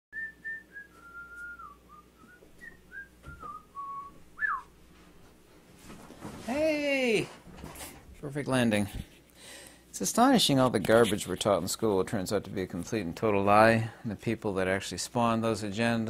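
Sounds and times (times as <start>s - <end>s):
man whistling a tune: 0.2s - 4.7s.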